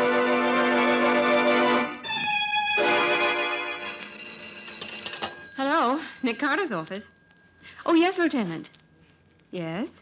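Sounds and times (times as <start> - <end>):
organ music: 0.0 - 5.2
telephone bell ringing: 2.8 - 7.8
woman speaking: 5.6 - 7.1, 7.8 - 8.8, 9.5 - 10.0.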